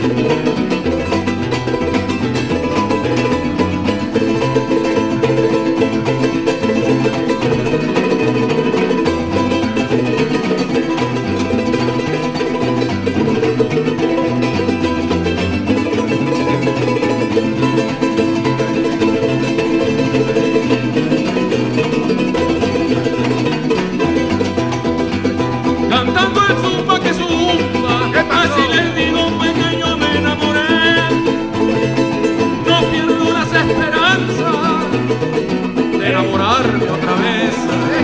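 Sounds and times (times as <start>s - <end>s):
acoustic folk string trio: 0.0s - 38.0s
man singing: 25.8s - 38.0s.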